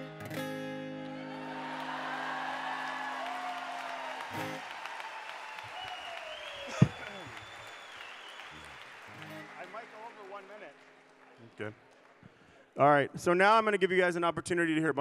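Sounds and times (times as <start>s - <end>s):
audience applauding and cheering: 0.9s - 12.8s
long whistle: 1.4s - 8.8s.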